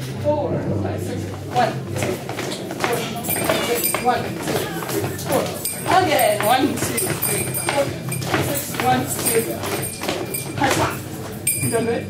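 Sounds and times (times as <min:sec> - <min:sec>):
shoes hopping on hard floor: 0:01.3 - 0:11.5.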